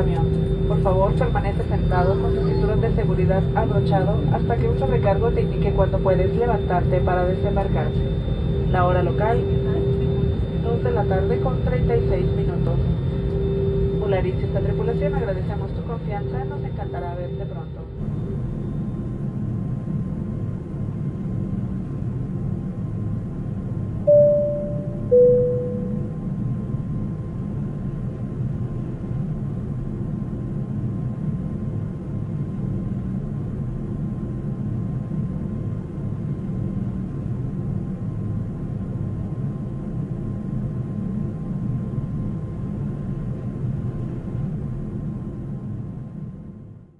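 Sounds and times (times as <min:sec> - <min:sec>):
airliner cabin rumble: 0:00.0 - 0:46.8
two-note falling chime: 0:24.1 - 0:26.1.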